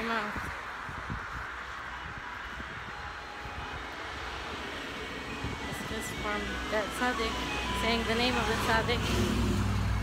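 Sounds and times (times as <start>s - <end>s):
outdoor rushing noise: 0.0s - 10.0s.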